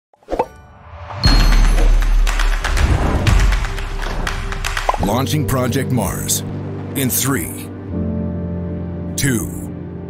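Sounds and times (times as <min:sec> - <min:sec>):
music: 0:00.2 - 0:10.0.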